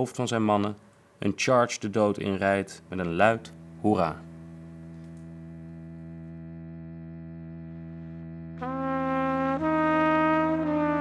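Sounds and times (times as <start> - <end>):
low steady hum: 0.0 - 11.0
solo trumpet long notes: 2.7 - 11.0.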